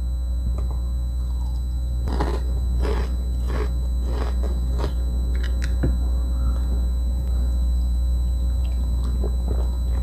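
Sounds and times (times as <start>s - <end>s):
low electrical hum: 0.0s - 10.0s
crunchy chewing of peanuts: 1.3s - 5.8s.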